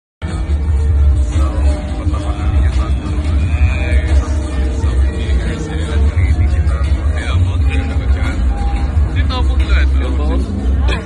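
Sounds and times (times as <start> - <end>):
amplified music with heavy bass: 0.2 - 11.0
crowd voices: 0.2 - 11.0.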